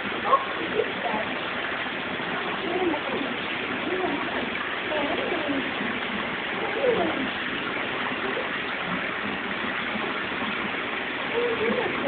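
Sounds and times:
faint voices murmuring: 0:02.3 - 0:08.8, 0:11.2 - 0:12.0.

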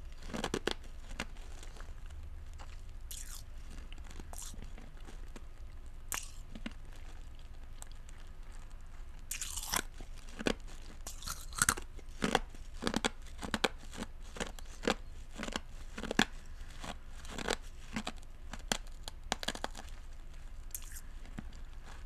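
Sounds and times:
wet mouth chewing sounds: 0:00.2 - 0:19.9, 0:20.7 - 0:22.0
mouth clicks and smacks: 0:03.1 - 0:03.4, 0:06.1 - 0:06.7, 0:09.3 - 0:09.8, 0:20.7 - 0:21.1.

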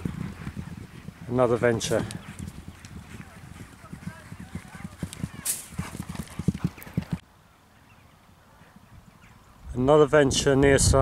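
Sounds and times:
horse hoofbeats on turf: 0:00.0 - 0:07.2.

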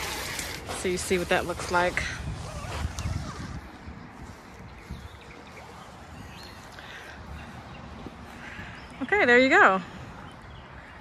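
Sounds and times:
outdoor background noise: 0:00.0 - 0:11.0
soft footsteps on grass: 0:00.7 - 0:10.8.

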